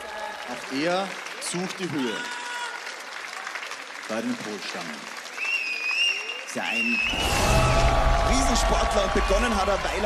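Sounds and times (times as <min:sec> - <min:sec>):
audience applauding: 0:00.0 - 0:10.0.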